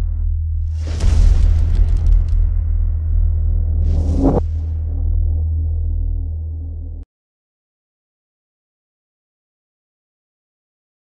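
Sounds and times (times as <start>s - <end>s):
deep low rumble: 0.0s - 7.1s
rush of noise sweeping: 3.6s - 5.7s.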